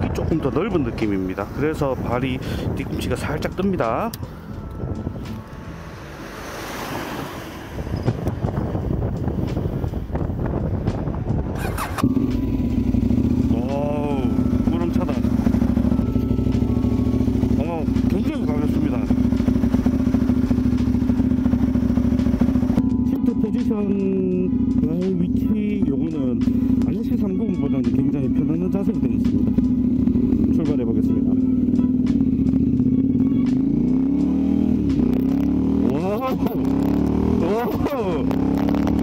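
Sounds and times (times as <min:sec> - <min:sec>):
motorcycle engine starting and idling: 0:11.4 - 0:39.0
outdoor noise: 0:11.5 - 0:13.4.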